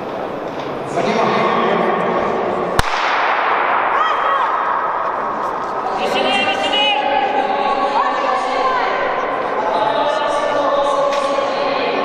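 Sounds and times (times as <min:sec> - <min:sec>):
crowd chatter: 0:00.0 - 0:12.0
starting gun crack: 0:02.8 - 0:04.0.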